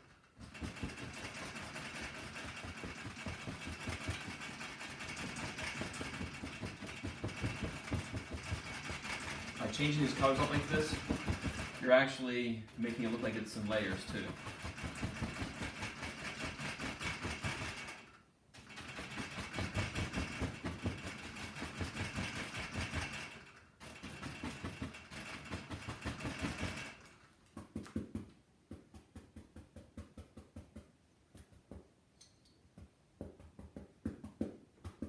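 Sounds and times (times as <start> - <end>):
paintbrush tapping on canvas: 27.5 - 32.0, 32.7 - 35.0.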